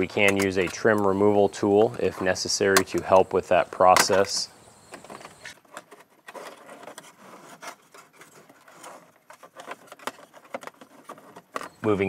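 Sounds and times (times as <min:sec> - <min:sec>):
plastic trim clicking and scraping: 0:00.0 - 0:11.9.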